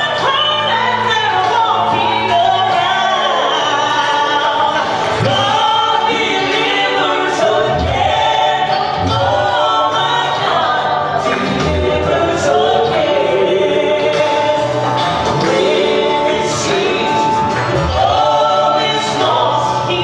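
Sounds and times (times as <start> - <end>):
gospel group singing in harmony: 0.0 - 20.0.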